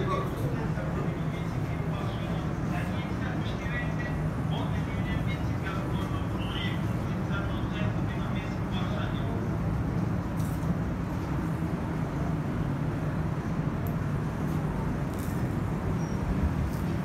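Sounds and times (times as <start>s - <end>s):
low indoor rumble: 0.0s - 17.0s.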